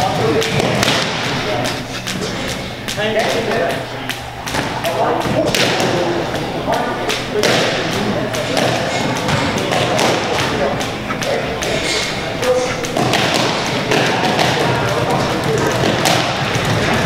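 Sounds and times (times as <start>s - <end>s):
people talking in background: 0.0s - 17.0s.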